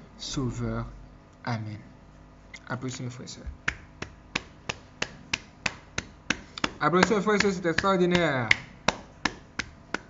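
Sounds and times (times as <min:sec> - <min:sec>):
sharp hand-made clicks: 0:03.7 - 0:10.0.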